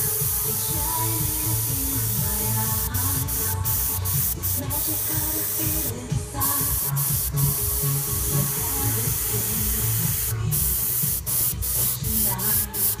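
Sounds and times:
airbrush spraying hiss: 0:00.0 - 0:13.0
background music low notes: 0:00.0 - 0:13.0.

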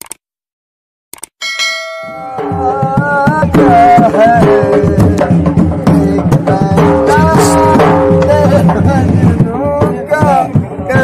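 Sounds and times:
notification bell ding: 0:01.4 - 0:02.8.

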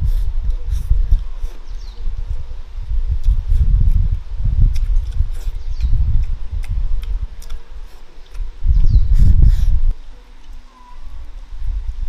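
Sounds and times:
close chewing: 0:00.0 - 0:10.7
faint small mouth clicks: 0:03.2 - 0:09.8.

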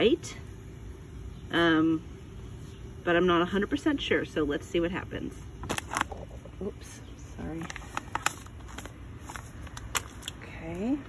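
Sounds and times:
plastic pouch crinkling and clicking: 0:05.6 - 0:06.3, 0:07.6 - 0:10.4.

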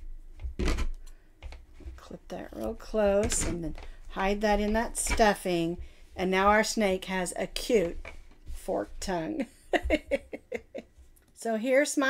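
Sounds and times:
rustling of hands handling yarn: 0:01.4 - 0:11.2.

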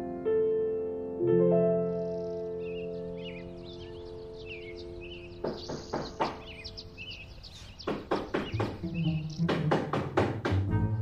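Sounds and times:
piano chord: 0:00.0 - 0:07.4
birds chirping: 0:01.5 - 0:11.0
knocking on a door: 0:05.4 - 0:06.6, 0:07.8 - 0:10.8.

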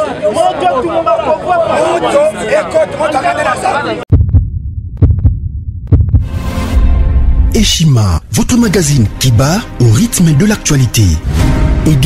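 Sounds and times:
deep heartbeat-like thumps: 0:04.1 - 0:07.5
steady low rumble: 0:04.1 - 0:08.4.

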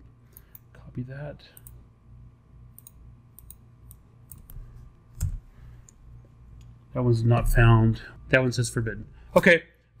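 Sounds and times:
keyboard and mouse clicks: 0:02.8 - 0:04.6.

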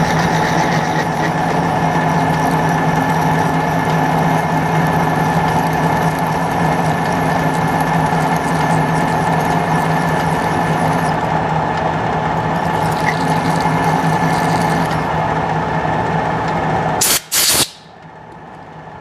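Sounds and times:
compressed air blasts: 0:17.0 - 0:18.0.

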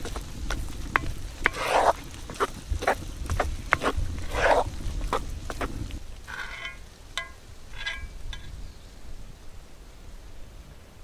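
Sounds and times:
wooden spoon stirring thick porridge: 0:00.0 - 0:08.5.

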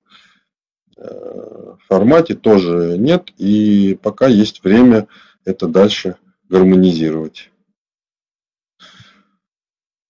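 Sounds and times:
man's faint breath: 0:00.0 - 0:00.6, 0:08.8 - 0:09.5.

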